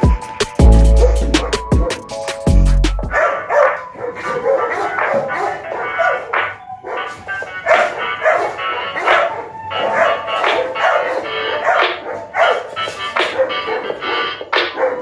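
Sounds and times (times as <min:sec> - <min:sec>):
background music: 0:00.0 - 0:15.0
dogs barking: 0:00.8 - 0:02.2, 0:03.1 - 0:15.0.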